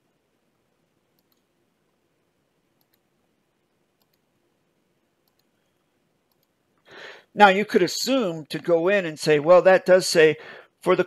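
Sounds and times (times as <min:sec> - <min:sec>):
computer keys clicking: 0:01.1 - 0:01.5, 0:02.8 - 0:03.1, 0:04.0 - 0:04.3, 0:05.2 - 0:05.6, 0:06.3 - 0:06.6.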